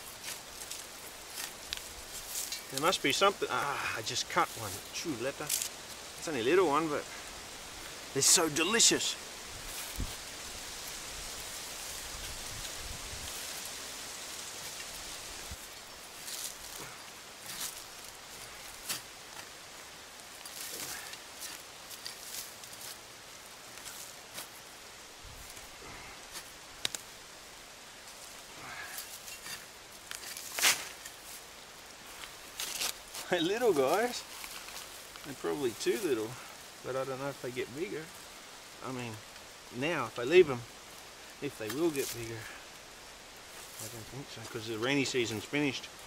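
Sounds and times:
digging in dry soil: 0.0 - 46.0
steady hiss: 0.0 - 46.0.

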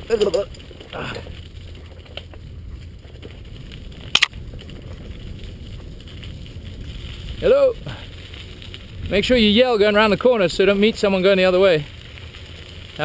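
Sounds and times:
bike rattle: 0.0 - 13.0
bike tyres crunching over gravel: 0.0 - 13.0.

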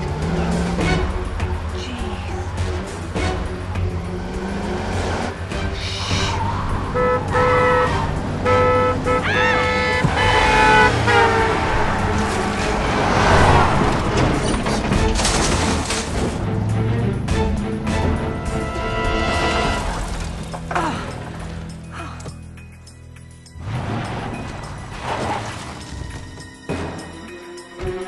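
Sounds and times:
film music score: 0.0 - 28.0
car horn blasts: 6.9 - 12.1.

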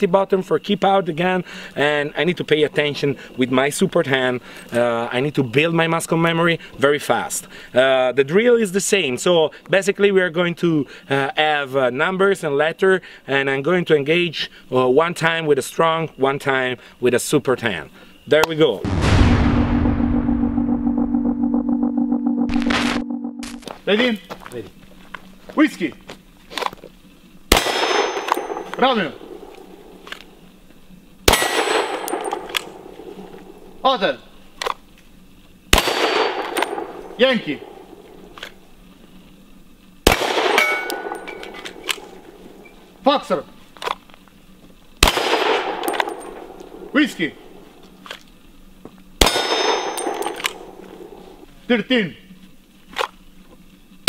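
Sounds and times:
deep boom: 18.8 - 23.6
hissing glitch noise bursts: 18.8 - 23.7
steady electronic hum: 18.8 - 51.6
pistol shot: 27.5 - 30.2, 31.3 - 33.6, 35.7 - 38.4, 40.0 - 42.4, 45.0 - 47.6, 49.2 - 51.3
steel plate ringing: 27.8 - 29.4, 40.4 - 41.6, 49.2 - 51.4.

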